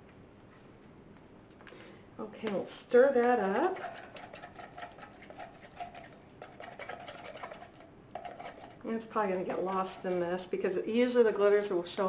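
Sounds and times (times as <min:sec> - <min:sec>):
stir stick scraping plastic jug: 0:03.2 - 0:10.7.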